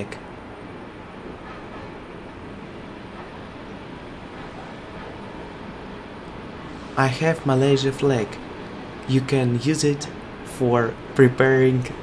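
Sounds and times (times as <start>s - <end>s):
even hiss: 3.8s - 12.0s.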